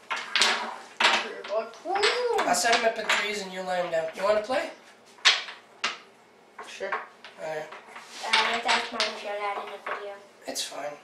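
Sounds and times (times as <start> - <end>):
wooden blocks clattering: 0.0 - 4.5, 5.2 - 10.2.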